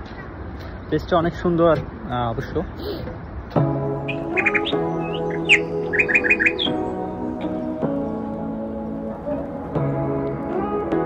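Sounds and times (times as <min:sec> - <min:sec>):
songbirds chirping: 0:03.1 - 0:10.6
background music: 0:03.6 - 0:11.0.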